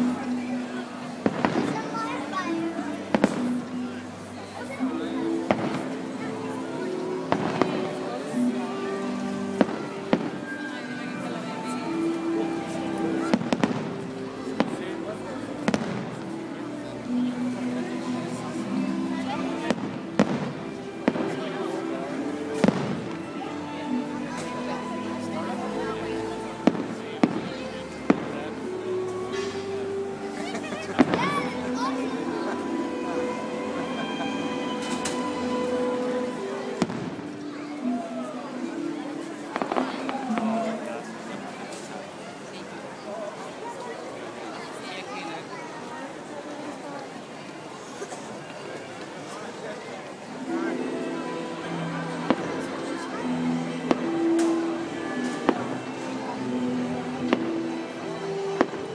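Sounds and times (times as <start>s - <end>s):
music: 0.0s - 58.9s
voices: 0.0s - 58.9s
fireworks bangs: 15.7s - 16.2s, 22.6s - 23.2s, 36.8s - 37.3s.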